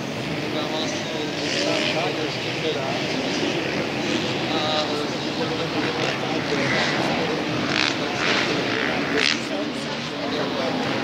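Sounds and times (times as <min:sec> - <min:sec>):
distant motorbike engines buzzing: 0:00.0 - 0:11.0
spectators chatting: 0:00.0 - 0:11.0.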